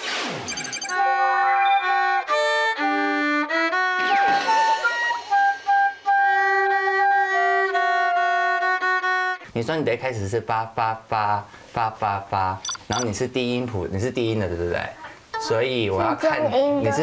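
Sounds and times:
flute playing: 1.0s - 9.4s
viola playing: 1.0s - 9.4s.

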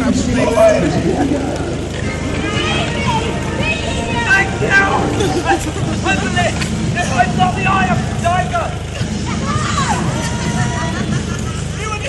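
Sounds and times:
onlookers chatter: 0.0s - 12.0s
steady low rumble: 0.0s - 12.0s
voices talking: 0.0s - 12.0s.

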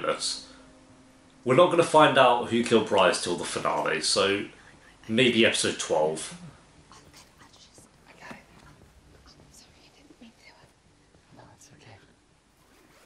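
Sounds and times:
faint television dialogue: 1.5s - 12.2s.

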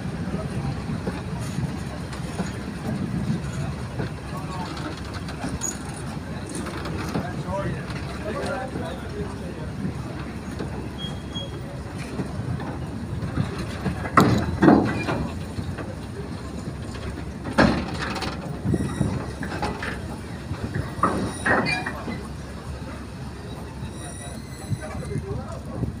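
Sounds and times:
freight train wheels rumbling: 0.0s - 26.0s
clanks and knocks of couplings: 0.4s - 9.2s, 10.2s - 22.3s
high wheel squeal: 10.9s - 11.8s, 18.6s - 20.0s, 20.8s - 22.5s, 23.4s - 25.4s.

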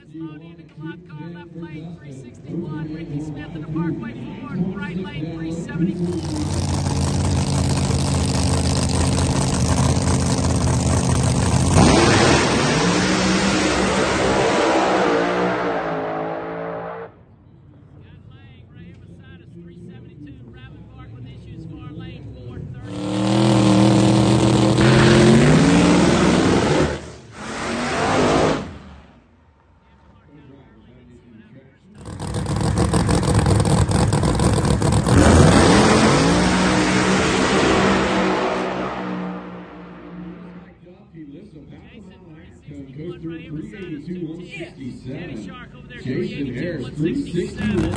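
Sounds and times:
drag racing engines revving: 2.4s - 18.3s, 18.9s - 29.3s, 31.9s - 40.8s, 45.2s - 47.9s
race cars accelerating: 2.4s - 18.3s, 18.9s - 29.3s, 32.0s - 40.8s, 45.2s - 47.9s.

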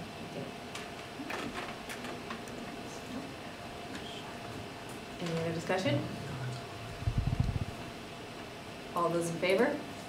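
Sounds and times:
faint room hum: 0.0s - 10.0s
muffled rumble of bumps: 7.0s - 7.8s.

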